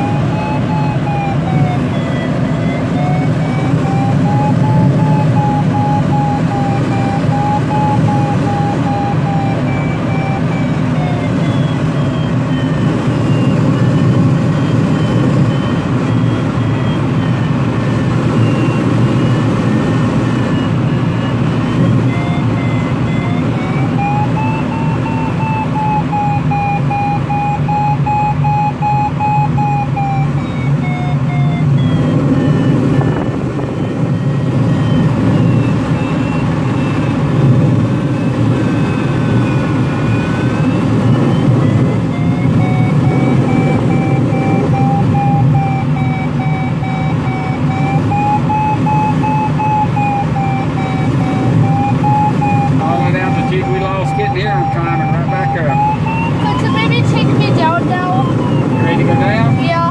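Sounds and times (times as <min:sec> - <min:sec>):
airflow rushing past cockpit: 0:00.0 - 0:59.9
electronic tone sliding in pitch: 0:00.0 - 0:59.9.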